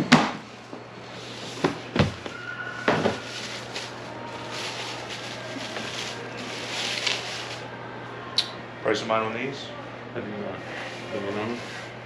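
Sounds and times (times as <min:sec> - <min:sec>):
wrapping paper rustling: 0:01.4 - 0:07.7.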